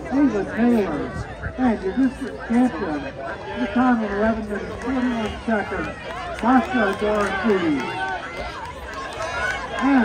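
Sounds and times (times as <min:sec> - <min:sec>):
man announcing: 0:00.0 - 0:08.0, 0:09.7 - 0:10.0
spectators chattering: 0:00.0 - 0:10.0.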